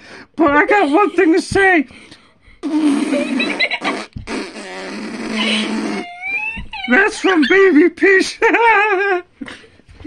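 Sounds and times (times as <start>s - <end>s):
person blowing a raspberry: 2.6s - 6.4s.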